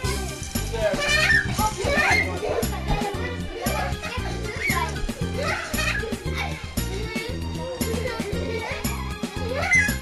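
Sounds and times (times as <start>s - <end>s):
children shouting and squealing: 0.0s - 10.0s.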